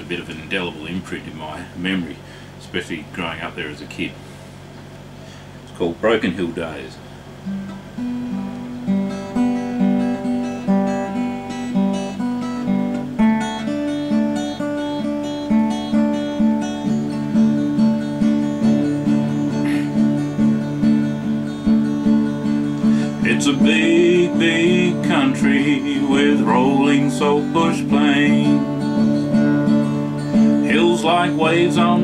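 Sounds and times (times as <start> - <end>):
acoustic guitar chords: 0.0 - 4.1, 5.3 - 32.0.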